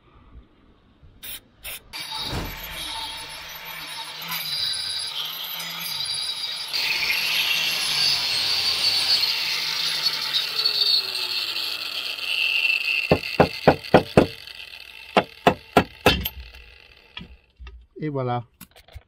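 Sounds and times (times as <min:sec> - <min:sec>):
angle grinder cutting metal: 0:01.9 - 0:17.6.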